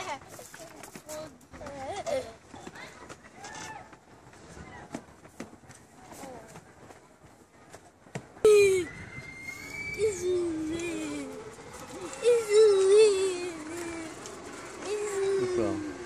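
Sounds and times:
child wailing: 0:08.5 - 0:14.2.

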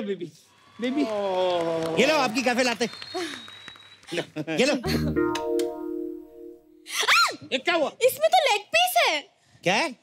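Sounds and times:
music chord with low hit: 0:04.9 - 0:06.8.

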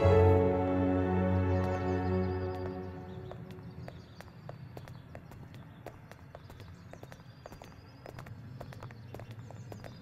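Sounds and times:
footsteps on hard floor: 0:01.6 - 0:10.0.

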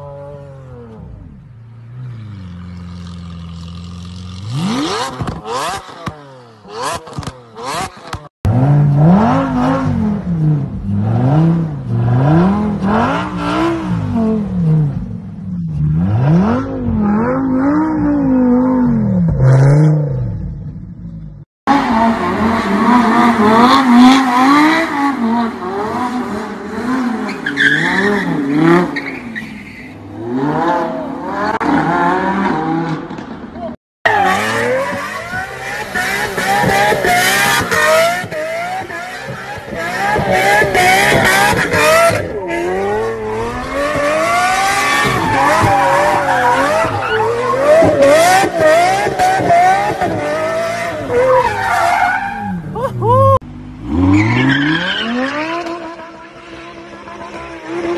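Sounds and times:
car engine revving: 0:00.7 - 0:29.2, 0:30.1 - 0:57.9
tire squeal: 0:27.2 - 0:30.3, 0:34.1 - 0:48.5, 0:50.8 - 0:53.3, 0:53.9 - 0:56.2.

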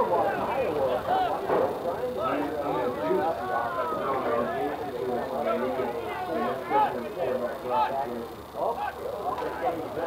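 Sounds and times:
many voices shouting: 0:00.0 - 0:01.5, 0:03.0 - 0:04.2.

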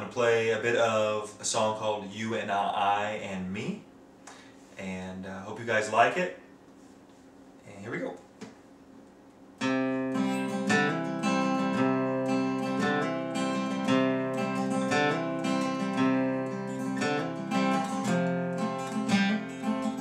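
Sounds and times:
acoustic guitar strumming: 0:09.6 - 0:20.0.

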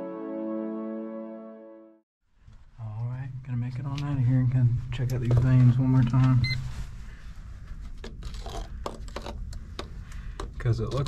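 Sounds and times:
man talking: 0:02.8 - 0:06.6, 0:10.6 - 0:11.0.

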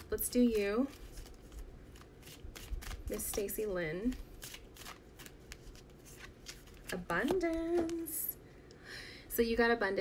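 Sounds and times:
cards being shuffled: 0:00.3 - 0:08.2.

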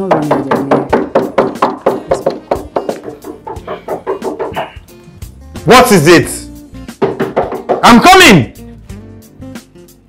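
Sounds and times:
rapid knocking on a door: 0:00.0 - 0:04.8, 0:07.0 - 0:08.0
background music: 0:00.0 - 0:10.0.

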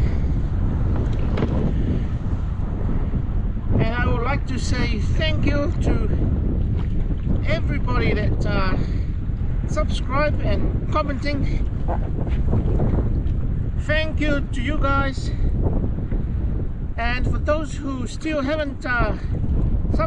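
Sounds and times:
wind buffeting microphone: 0:00.0 - 0:20.0
person speaking: 0:09.7 - 0:11.6.

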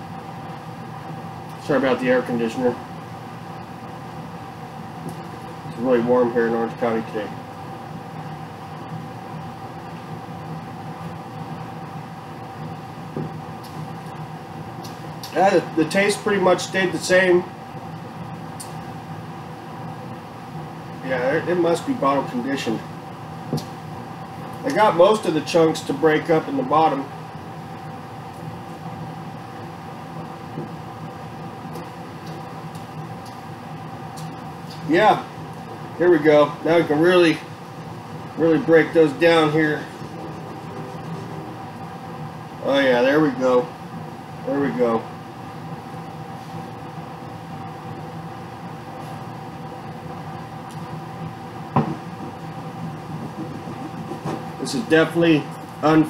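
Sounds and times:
air conditioner humming: 0:00.0 - 0:56.0
short knock: 0:51.8 - 0:52.0.

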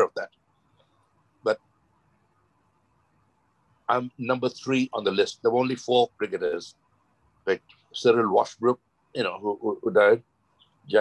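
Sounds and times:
man talking: 0:00.0 - 0:00.3, 0:03.9 - 0:06.7, 0:07.5 - 0:10.2.

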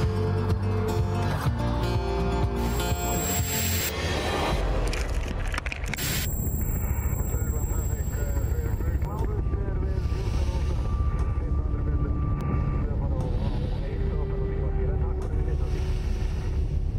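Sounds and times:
voices: 0:06.0 - 0:16.5.

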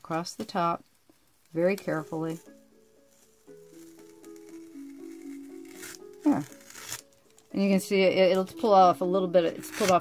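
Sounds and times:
soft background music: 0:00.0 - 0:10.0
tape peeling off paper: 0:01.5 - 0:07.5, 0:09.6 - 0:10.0.

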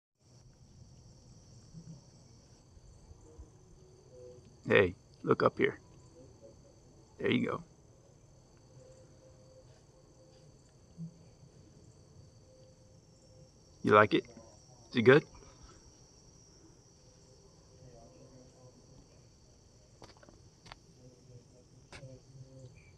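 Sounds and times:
high-pitched insect chorus: 0:00.2 - 0:22.9.

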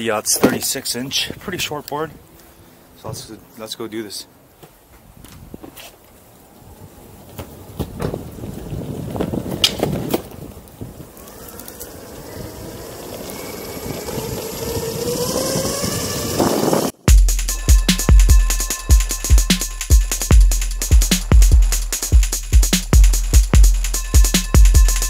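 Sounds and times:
skateboard wheels rolling: 0:04.6 - 0:17.0
wind on microphone: 0:05.0 - 0:05.8, 0:06.6 - 0:17.1
electric motor whine: 0:11.3 - 0:17.0
music with drum-machine beat: 0:17.1 - 0:25.0.

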